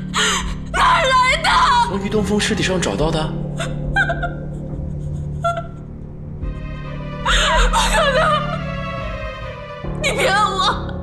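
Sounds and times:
soft music with held chords: 0.0 - 11.0
woman sobbing while speaking: 3.4 - 5.9, 7.2 - 9.1.

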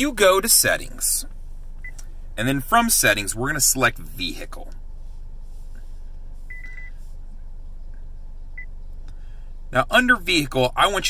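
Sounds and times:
low car cabin hum: 0.0 - 11.0.

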